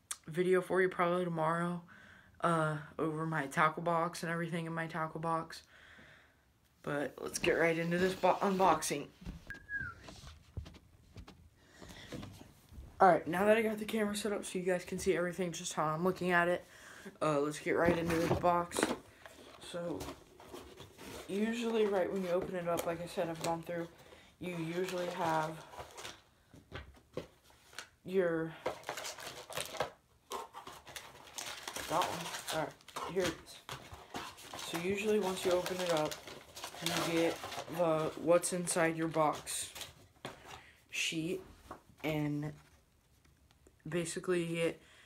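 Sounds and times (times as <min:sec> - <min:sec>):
packaging rustling: 0:17.8 - 0:28.0, 0:28.6 - 0:40.6.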